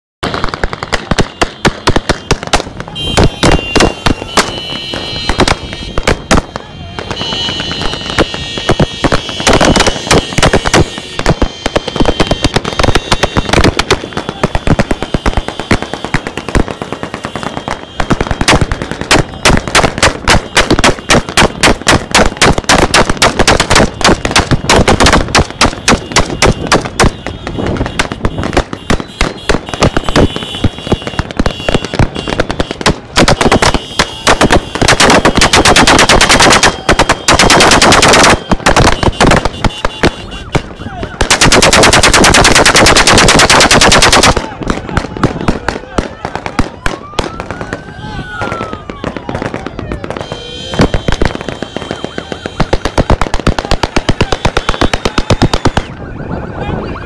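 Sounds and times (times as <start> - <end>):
automatic rifle bursts: 33.2 - 40.0, 41.3 - 44.5.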